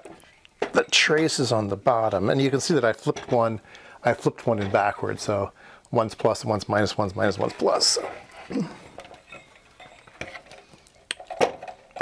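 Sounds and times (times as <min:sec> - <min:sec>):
sheet metal clinks and knocks: 0:07.4 - 0:10.6.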